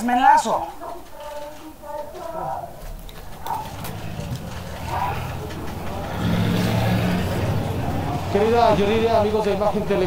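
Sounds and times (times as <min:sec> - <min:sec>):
vehicle engine running: 0:02.9 - 0:10.0.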